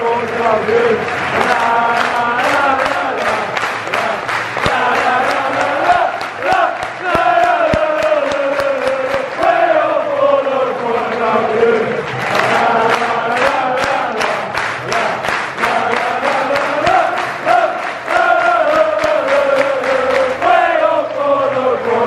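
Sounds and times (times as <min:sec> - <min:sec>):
football supporters chanting: 0:00.0 - 0:22.0
rhythmic handclaps: 0:00.0 - 0:22.0.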